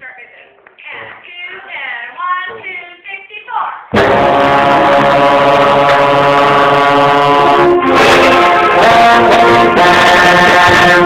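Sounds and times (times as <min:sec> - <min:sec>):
concert band sustained chords: 0:03.9 - 0:11.0
trombone playing: 0:03.9 - 0:11.0.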